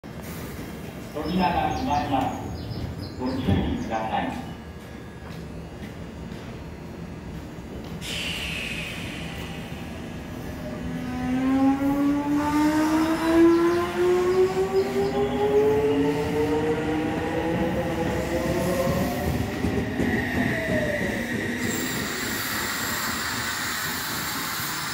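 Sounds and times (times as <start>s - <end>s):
hissing rail noise: 7.9s - 13.3s, 13.9s - 24.9s
train cars rumbling past: 8.0s - 24.9s
electric train motor whine rising: 8.1s - 24.9s.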